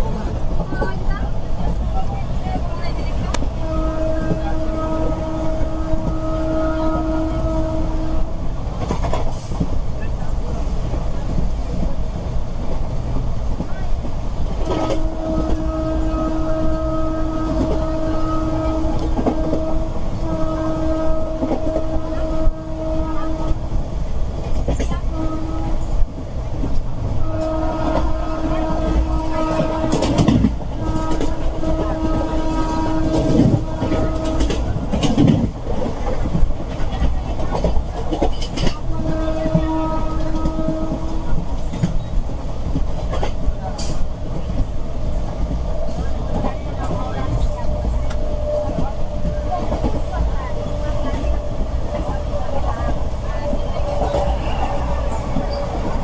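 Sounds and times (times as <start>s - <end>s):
oncoming train passing: 0.0s - 56.0s
train rumble: 0.0s - 56.0s
locomotive horn blasts: 3.6s - 8.4s, 14.7s - 23.7s, 25.1s - 26.0s, 27.2s - 35.1s, 38.8s - 41.4s, 46.8s - 56.0s
wheels clacking over rail joints: 25.8s - 56.0s.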